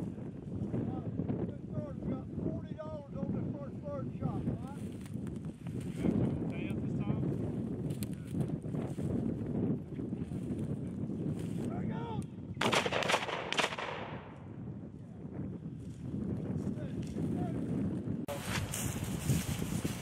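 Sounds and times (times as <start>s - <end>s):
low wind noise: 0.0s - 20.0s
shotgun shots: 12.6s - 14.4s.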